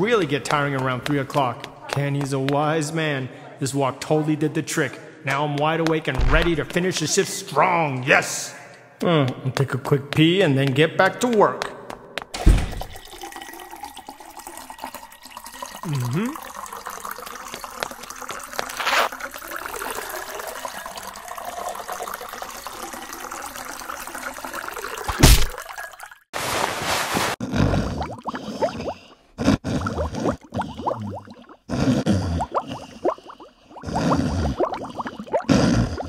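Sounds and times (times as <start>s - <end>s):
loud thump: 6.2s - 6.8s, 25.2s - 25.6s
urine stream into urinal: 12.4s - 26.3s
rhythmic snoring: 31.7s - 33.0s, 33.8s - 36.0s.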